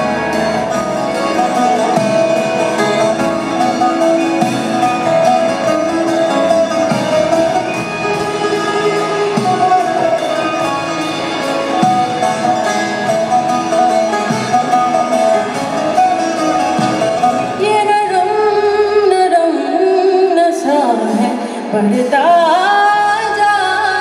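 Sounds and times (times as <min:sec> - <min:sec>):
guitar: 0:00.0 - 0:24.0
mandolin: 0:00.0 - 0:24.0.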